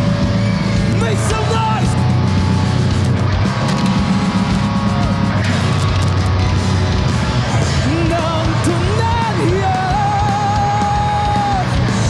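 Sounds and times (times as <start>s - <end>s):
live heavy rock band: 0.0s - 12.0s.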